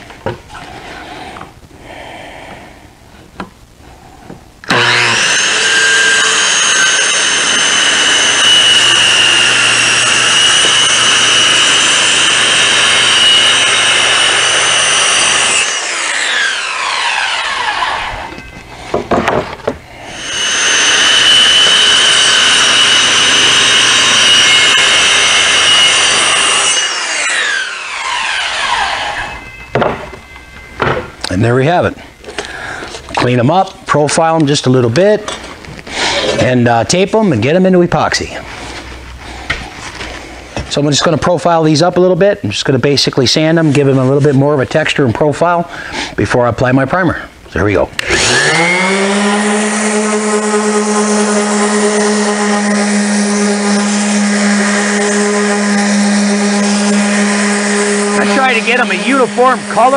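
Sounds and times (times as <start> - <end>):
circular saw cutting a board: 4.7 - 18.5, 20.0 - 29.5, 48.0 - 59.9.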